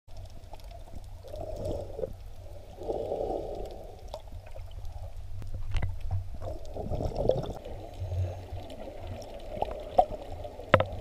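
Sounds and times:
underwater bubbling and sloshing: 0.1s - 11.0s
underwater low rumble: 0.1s - 11.0s.

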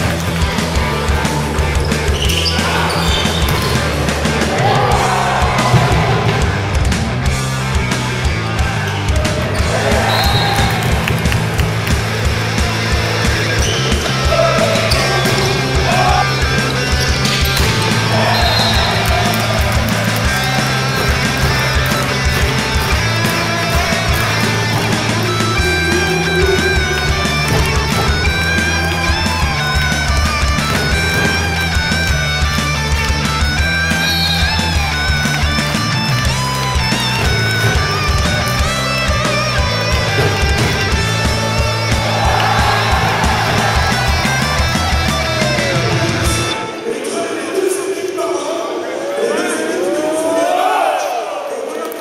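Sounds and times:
rock music with drums and guitar: 0.0s - 46.6s.

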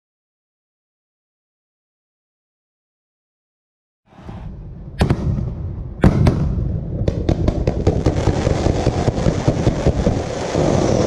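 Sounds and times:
loud firework bangs: 4.1s - 11.0s
low rumble of fireworks firing: 4.6s - 11.0s
rapid firework cracks: 5.0s - 11.0s.

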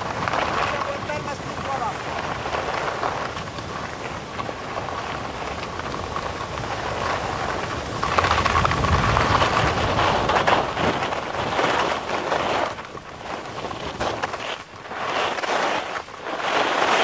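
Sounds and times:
skis scraping on snow: 0.0s - 17.0s
wind rumbling on microphone: 0.0s - 17.0s.

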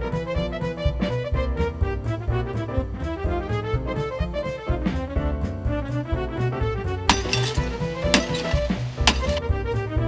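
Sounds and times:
glass breaking: 7.1s - 9.4s
glass picture tube struck: 7.1s - 9.4s.

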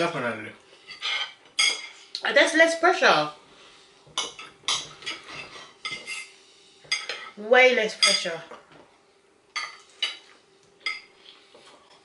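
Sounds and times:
knife and fork scraping plate: 0.8s - 2.0s, 4.2s - 6.3s.

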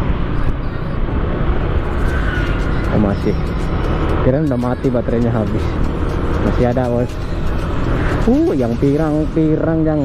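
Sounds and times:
road noise: 0.0s - 10.0s
scooter engine: 0.0s - 10.0s.

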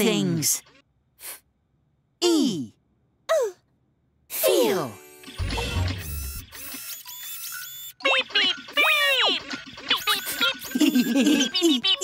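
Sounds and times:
short electronic whirring tones: 4.9s - 8.0s.

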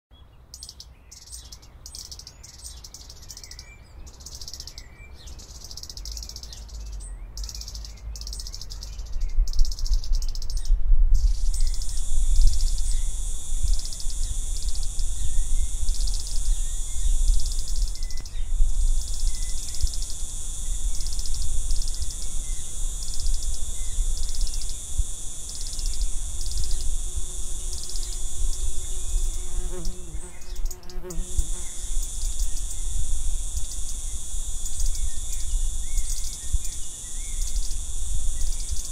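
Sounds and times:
insect chorus trilling: 1.2s - 38.9s.

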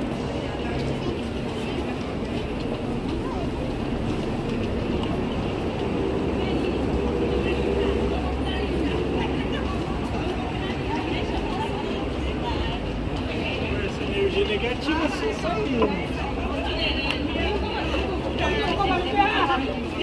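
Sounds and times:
bus engines: 0.0s - 20.0s
chatter of passers-by: 0.0s - 20.0s
traffic rumble: 0.0s - 20.0s.

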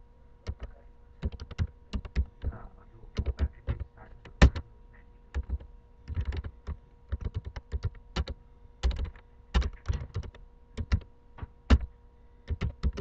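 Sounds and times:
typing on computer keyboard: 0.4s - 2.5s, 3.2s - 4.6s, 5.3s - 11.1s, 12.5s - 13.0s.

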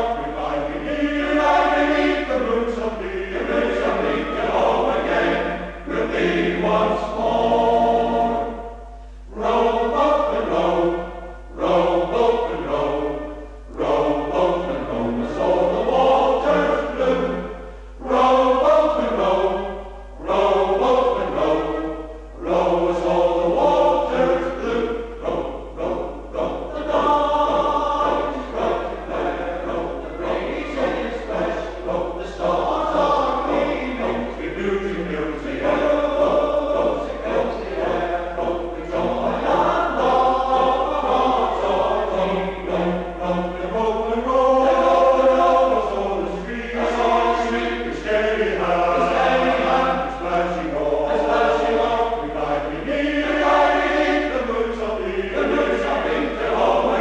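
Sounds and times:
male voice choir singing: 0.0s - 57.0s.

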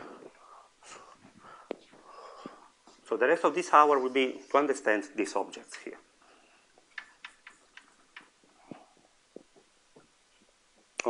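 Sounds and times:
chalk taps: 6.8s - 10.2s.

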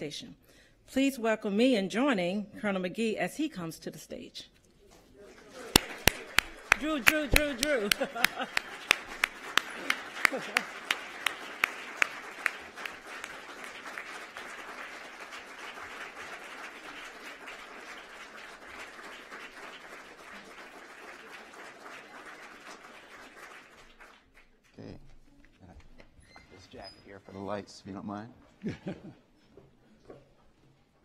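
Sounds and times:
audience applauding: 5.3s - 24.9s
person clapping loudly nearby: 5.7s - 17.7s.

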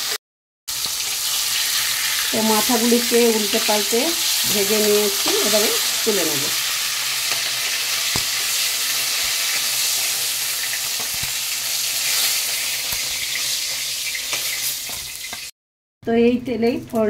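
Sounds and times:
fish heads sizzling in hot oil: 0.0s - 15.5s.

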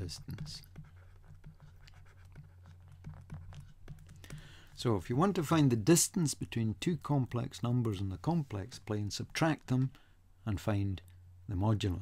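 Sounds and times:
stylus scratching on tablet: 0.0s - 5.3s.

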